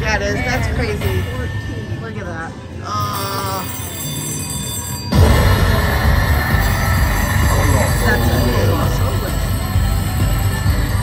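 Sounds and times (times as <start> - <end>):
slot machine chiming jingle: 1.2 - 11.0
celebration music with heavy bass: 5.2 - 11.0.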